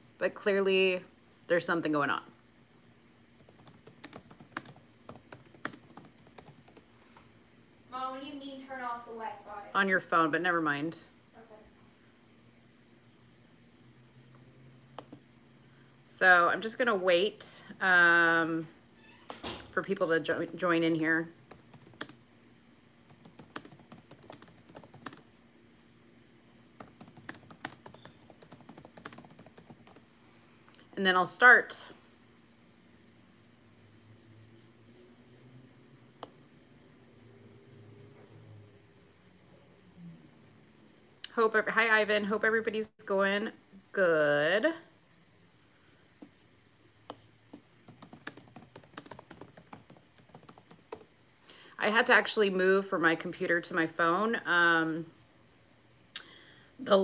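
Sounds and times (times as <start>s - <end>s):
computer keyboard typing: 3.4s - 6.9s, 15.0s - 15.2s, 20.3s - 22.2s, 23.1s - 25.3s, 26.8s - 30.0s, 47.8s - 51.1s.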